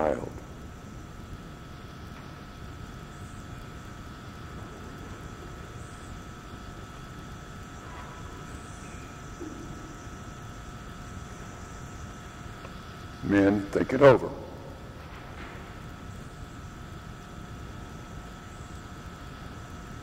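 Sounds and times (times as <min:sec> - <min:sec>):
faint steady hum tones: 0:00.0 - 0:20.0.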